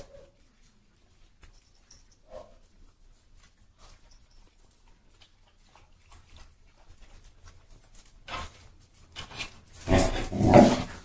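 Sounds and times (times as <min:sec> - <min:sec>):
claws on wooden floor: 0:00.0 - 0:11.0
dogs crunching dry food: 0:00.0 - 0:11.0.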